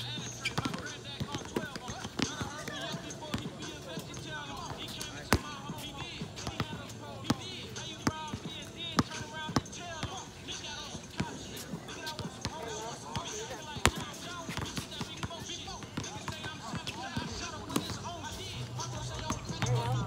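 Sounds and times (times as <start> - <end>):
voices chattering: 0.0 - 20.0
basketballs bouncing on court: 0.1 - 20.0.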